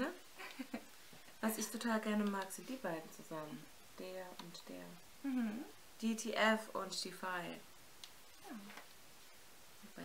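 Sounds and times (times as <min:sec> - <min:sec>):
quiet vocal murmur: 0:05.2 - 0:05.7.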